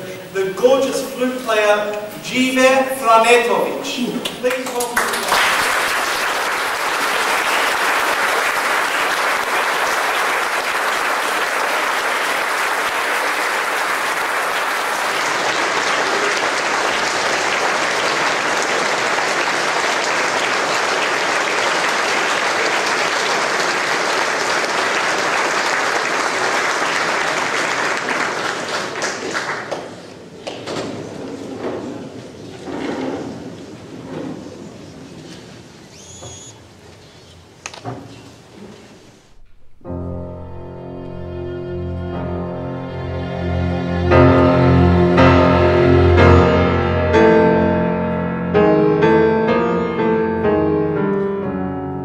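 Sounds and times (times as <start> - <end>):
audience applauding: 4.2 - 30.6.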